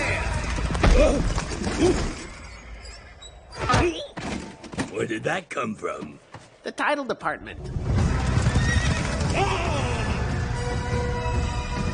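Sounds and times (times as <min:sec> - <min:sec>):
horses hooves galloping: 0:07.9 - 0:09.9
horse whinnying: 0:08.4 - 0:10.4.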